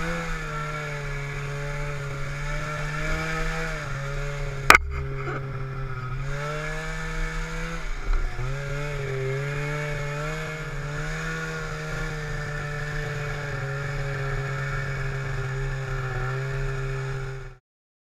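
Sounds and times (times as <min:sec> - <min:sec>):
snowmobile engine running: 0:00.0 - 0:17.6
sharp click or knock: 0:04.7 - 0:05.6.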